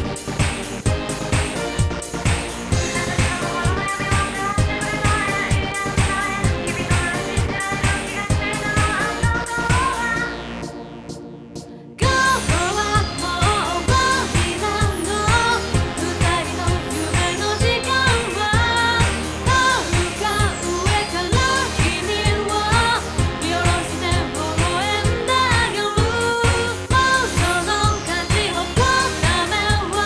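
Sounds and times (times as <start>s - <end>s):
quick dance beat: 0.0s - 30.0s
woman singing pop song: 2.7s - 10.8s, 12.0s - 30.0s.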